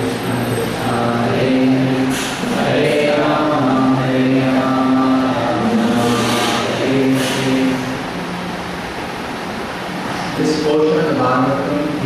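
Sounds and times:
devotional prayers chanted: 0.0 - 8.2.

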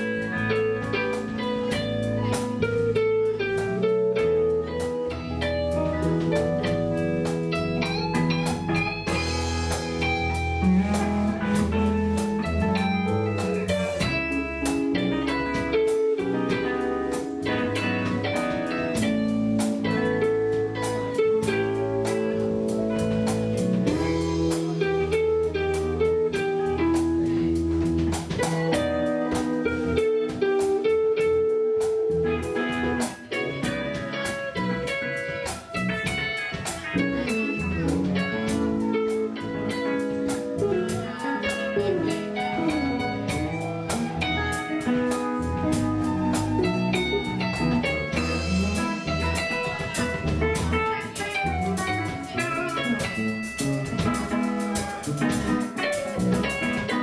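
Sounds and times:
drum kit beat: 0.0 - 57.0
electric guitars: 0.0 - 57.0.

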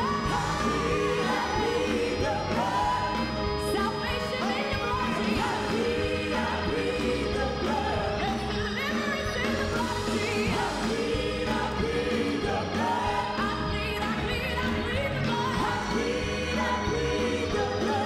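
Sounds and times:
people singing gospel: 0.0 - 18.0.

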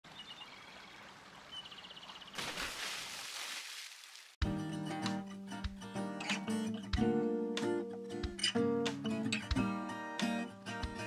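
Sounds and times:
birds chirping and trilling: 0.1 - 2.4
water rushing: 0.5 - 4.4.

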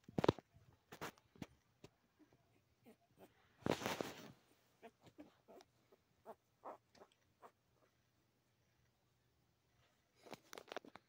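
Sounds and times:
puppy making short vocal sounds: 4.8 - 7.6.

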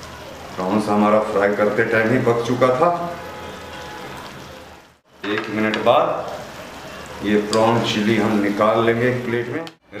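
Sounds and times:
sauce sizzling in a pan: 0.0 - 10.0.

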